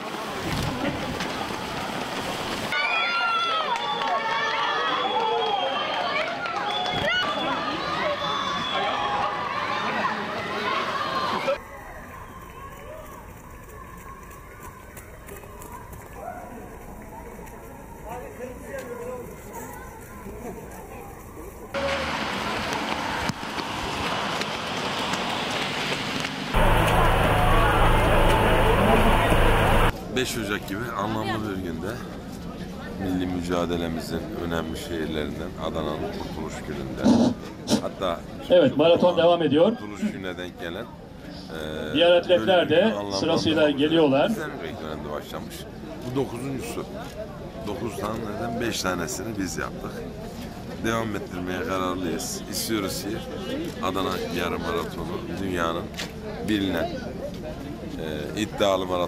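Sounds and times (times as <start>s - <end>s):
children shouting and cheering: 2.7s - 15.3s
steady rushing outdoor noise: 6.1s - 59.0s
rain hissing on wet pavement: 21.8s - 29.9s
deep rumble: 26.6s - 29.9s.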